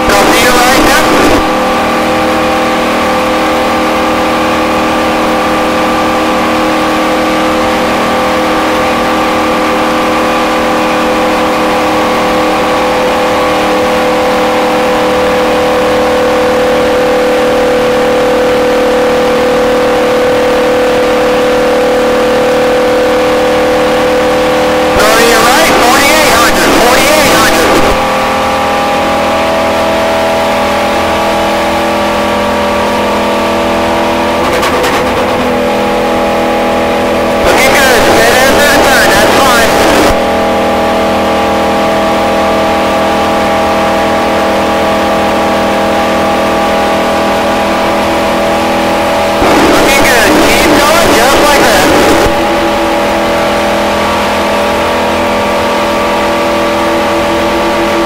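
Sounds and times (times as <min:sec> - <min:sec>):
radio transmission: 0:00.0 - 0:01.6, 0:24.9 - 0:28.1, 0:37.4 - 0:40.3, 0:49.4 - 0:52.6
race car engine at high rpm: 0:00.0 - 0:58.0.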